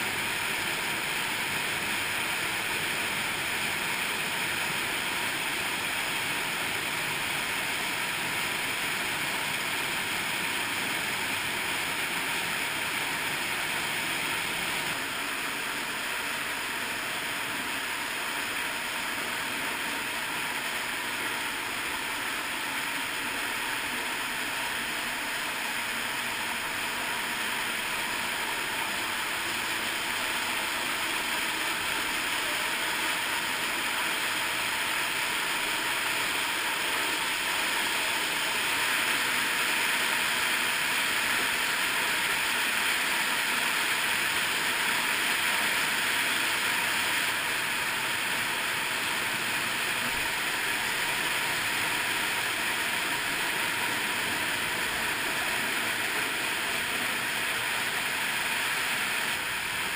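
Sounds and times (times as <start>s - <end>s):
stream and waterfall rushing: 0.0s - 59.9s.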